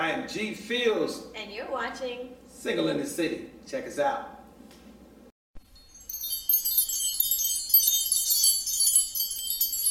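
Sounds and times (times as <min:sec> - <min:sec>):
sparkle chime shimmer: 0:05.6 - 0:09.9.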